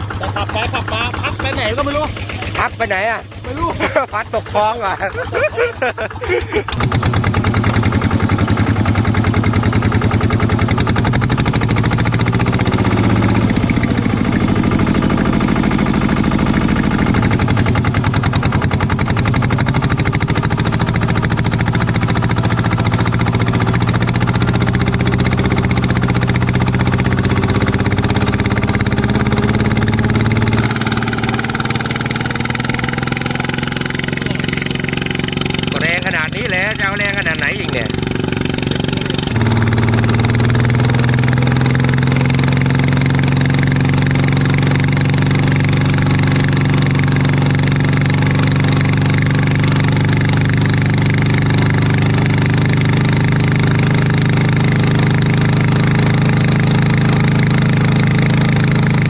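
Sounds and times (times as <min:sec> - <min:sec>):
diesel tractor engine under load: 0:00.0 - 0:59.0.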